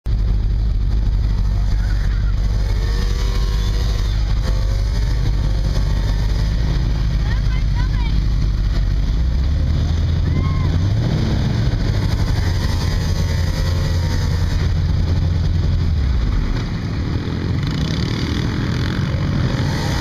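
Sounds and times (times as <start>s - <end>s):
quad engines rumbling: 0.0s - 20.0s
faint voices: 1.4s - 4.8s.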